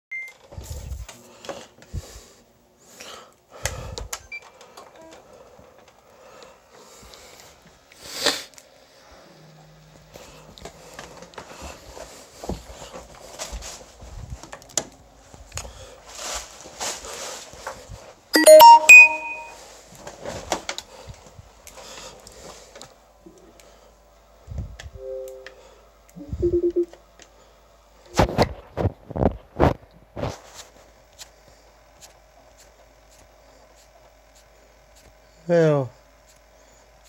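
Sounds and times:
console startup chime: 18.4s - 19.6s, 26.2s - 26.9s
short high beep: 18.4s - 19.6s, 26.2s - 26.9s.

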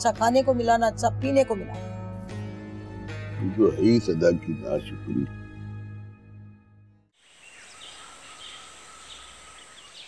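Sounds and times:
soft music: 0.0s - 7.0s
birds chirping: 7.2s - 10.0s.

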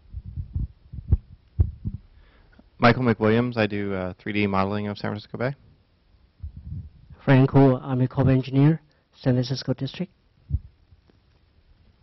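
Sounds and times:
microphone handling thumps and rubbing: 0.0s - 2.1s, 6.4s - 7.2s, 10.5s - 11.1s.

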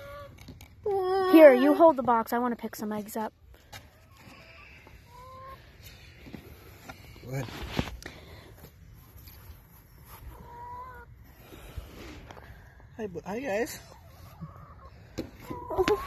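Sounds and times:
chicken calling: 4.0s - 5.8s, 10.1s - 11.2s, 13.8s - 16.0s.

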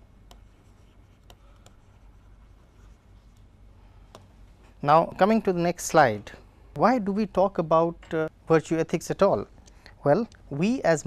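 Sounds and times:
stylus scratching on tablet: 0.2s - 3.5s
stylus tip ticks: 9.6s - 10.5s.

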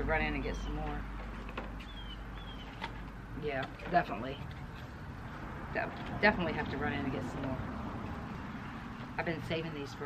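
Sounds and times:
bird chirping: 1.8s - 2.9s.

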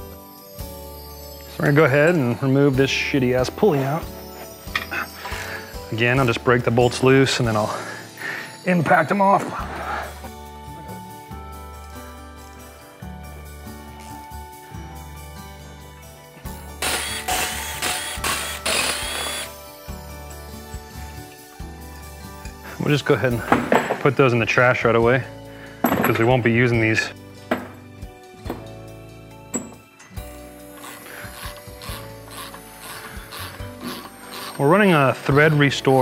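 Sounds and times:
hand ratchet clicking: 16.8s - 19.5s, 30.7s - 34.7s
impact wrench bursts: 16.8s - 19.6s, 30.7s - 34.6s.

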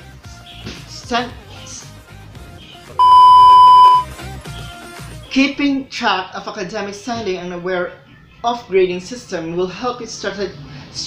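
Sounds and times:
soft background music: 0.0s - 11.0s
electronic bleep tone: 3.0s - 4.1s.

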